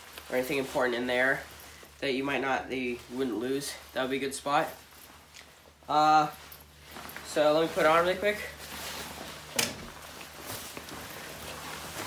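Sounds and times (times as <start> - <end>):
jacket rustling: 0.0 - 12.0.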